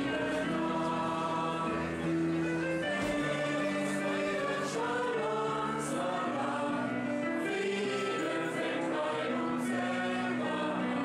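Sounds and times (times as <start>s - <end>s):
mixed choir singing sustained chords: 0.0s - 11.0s.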